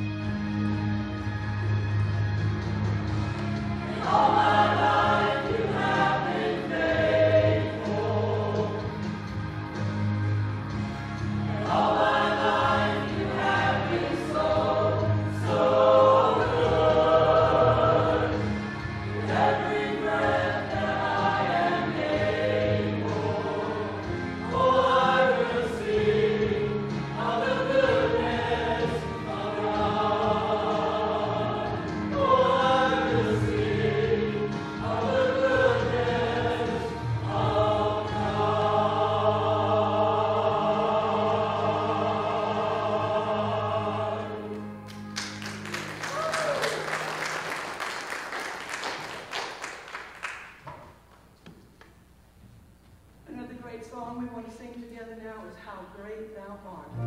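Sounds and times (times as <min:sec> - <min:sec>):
choir singing a hymn: 0:03.5 - 0:46.1.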